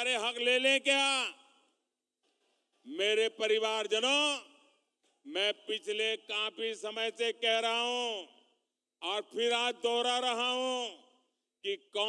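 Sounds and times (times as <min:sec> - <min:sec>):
man speaking over public address: 0:00.0 - 0:01.4, 0:02.9 - 0:04.6, 0:05.3 - 0:08.4, 0:09.0 - 0:11.0, 0:11.7 - 0:12.0.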